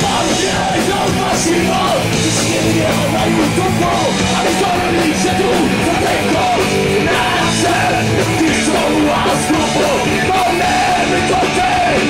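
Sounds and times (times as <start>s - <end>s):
punk rock band playing live: 0.0s - 12.0s.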